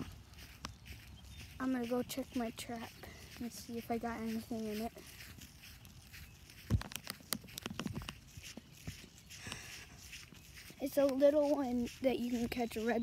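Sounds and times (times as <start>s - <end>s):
faint rustles: 0.0s - 13.0s
footsteps: 0.0s - 13.0s.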